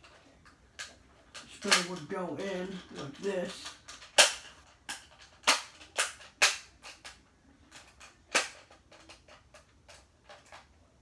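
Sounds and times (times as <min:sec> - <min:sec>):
plastic toy parts clicking: 0:00.0 - 0:10.7.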